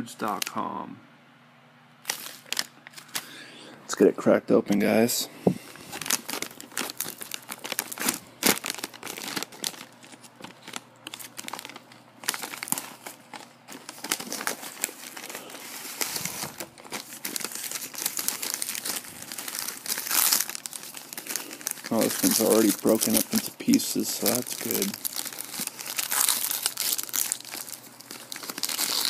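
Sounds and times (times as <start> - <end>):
foil packaging crinkling: 2.0 - 3.4, 4.7 - 29.0.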